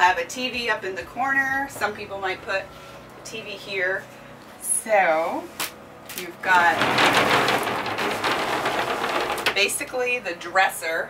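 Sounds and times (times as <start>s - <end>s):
wooden door sliding on track: 6.4s - 10.1s.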